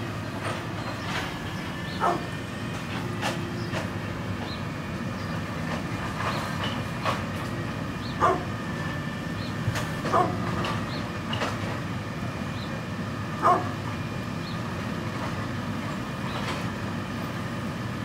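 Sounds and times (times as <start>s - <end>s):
dog barking: 2.0s - 2.3s, 8.2s - 8.5s, 10.1s - 10.5s, 13.4s - 13.8s.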